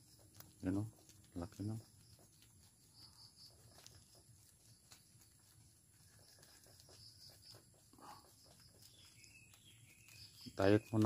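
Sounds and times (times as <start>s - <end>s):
rabbits chewing leaves: 0.0s - 11.0s
faint high pulsing chirp: 2.0s - 11.0s.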